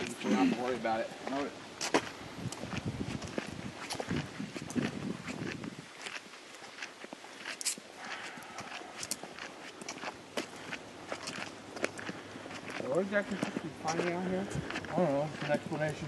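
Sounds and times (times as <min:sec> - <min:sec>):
footsteps on forest trail: 0:00.0 - 0:16.0.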